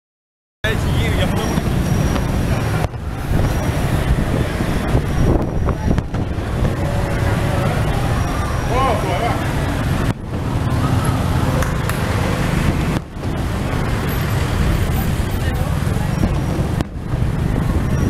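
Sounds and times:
car and motorbike engines: 0.6s - 18.0s
road noise: 0.6s - 18.0s.

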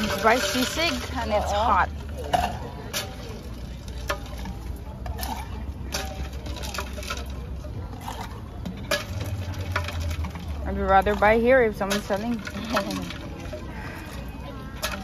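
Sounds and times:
ladle stirring in glass dispenser: 0.0s - 1.9s.

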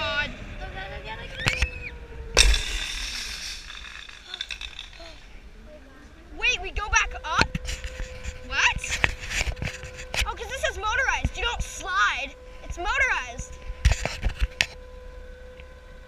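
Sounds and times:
trolley wheels whining on cable: 0.0s - 16.0s
children whooping and shrieking: 1.2s - 2.0s
sharp knocks: 2.4s - 5.2s.

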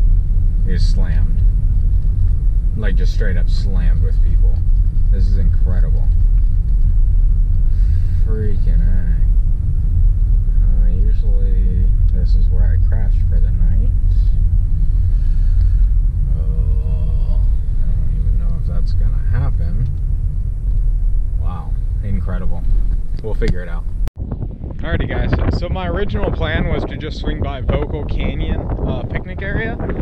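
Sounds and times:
car driving on dirt road: 0.0s - 30.0s.

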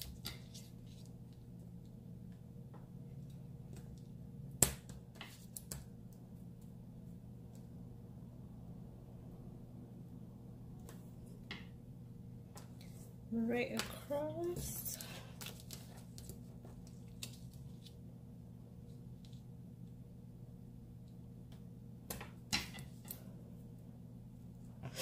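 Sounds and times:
low background hum: 0.0s - 25.0s.

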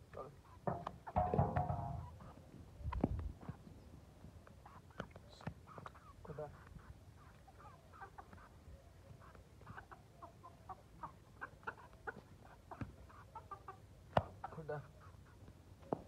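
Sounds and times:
chickens clucking: 0.0s - 16.0s
sharp knock: 0.7s - 2.1s.

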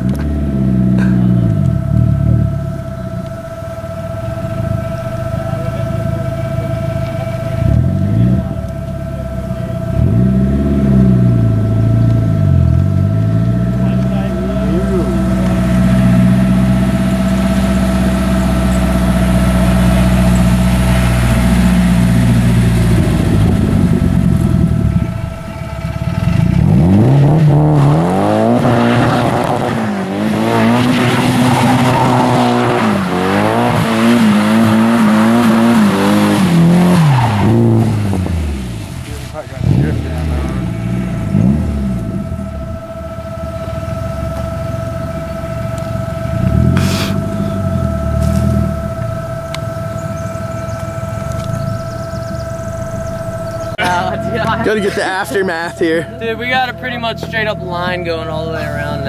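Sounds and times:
car engine revving: 0.0s - 59.0s.

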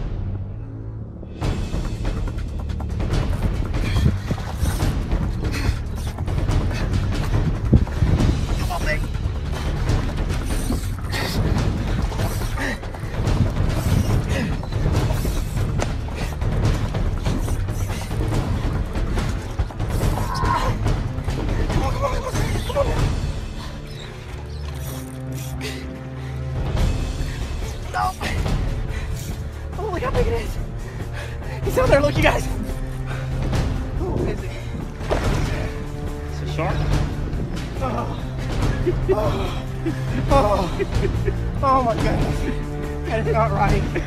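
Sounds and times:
background music: 0.0s - 44.0s.

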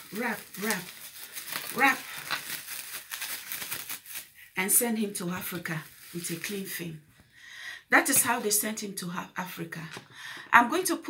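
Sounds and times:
cling film crinkling: 0.0s - 4.6s, 5.4s - 6.8s.

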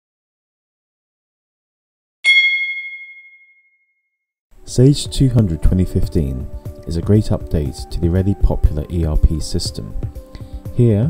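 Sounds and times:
bright chime: 2.3s - 3.8s.

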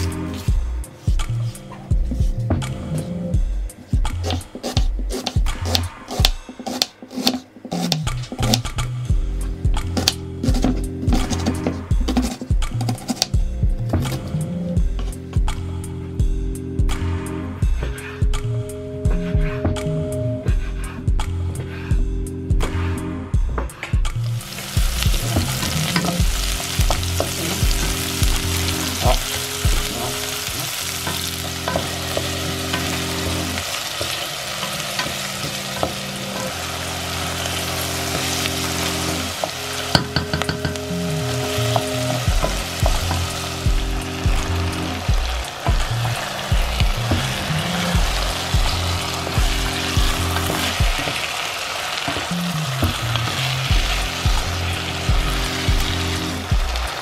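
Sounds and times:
soft background music: 0.0s - 51.4s, 52.1s - 57.0s
wooden spatula scraping and knocking: 4.2s - 8.6s, 10.0s - 13.4s, 26.8s - 36.6s
food sizzling in a pot: 24.3s - 57.0s.

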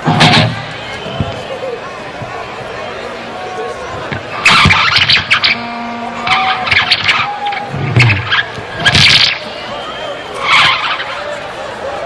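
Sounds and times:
squealing guitar tones: 4.5s - 9.4s.

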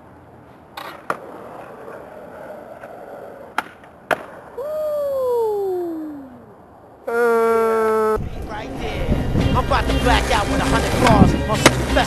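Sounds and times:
skateboard wheels rolling: 0.0s - 4.8s, 9.1s - 12.0s
skateboard clacks: 0.7s - 4.6s, 10.0s - 12.0s.

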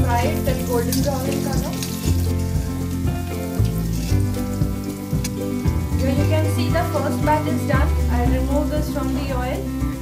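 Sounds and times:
background music: 0.0s - 10.0s
potatoes sizzling in hot oil: 0.0s - 10.0s.

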